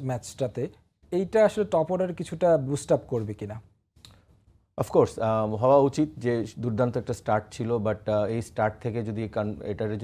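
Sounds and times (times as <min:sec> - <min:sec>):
man speaking: 0:00.0 - 0:03.7, 0:04.8 - 0:10.0.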